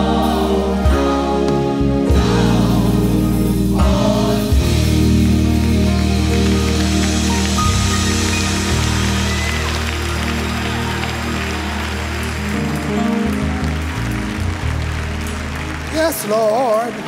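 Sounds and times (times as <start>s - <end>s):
crowd noise: 0.0s - 17.0s
organ chords: 0.0s - 17.0s.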